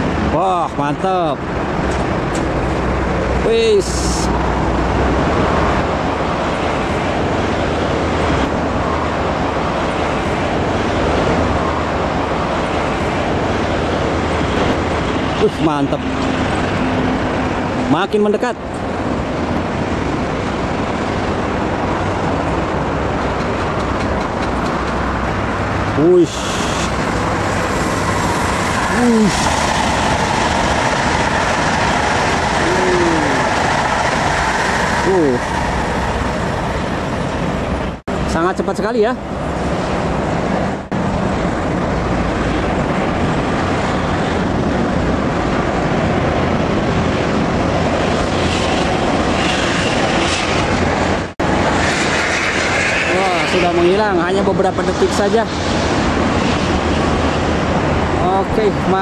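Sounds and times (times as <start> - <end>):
high-speed train passing: 0.0 - 59.0.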